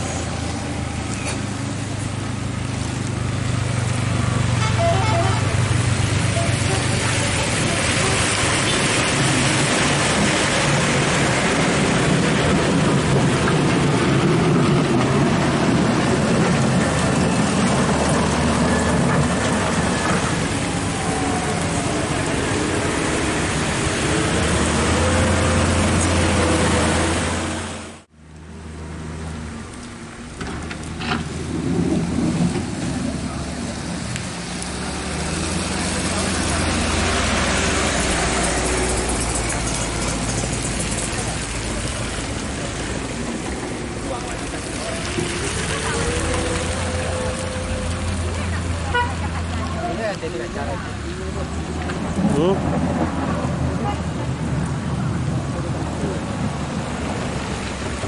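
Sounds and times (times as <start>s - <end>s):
heavy vehicles on muddy road: 0.0s - 58.0s.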